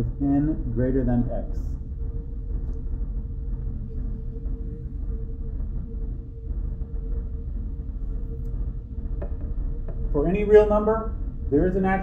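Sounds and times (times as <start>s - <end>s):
faint constant hum: 0.0s - 12.0s
low room rumble: 0.0s - 12.0s.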